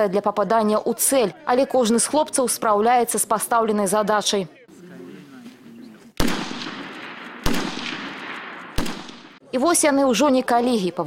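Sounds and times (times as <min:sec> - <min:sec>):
rifle shots with echo: 0:06.2 - 0:09.5.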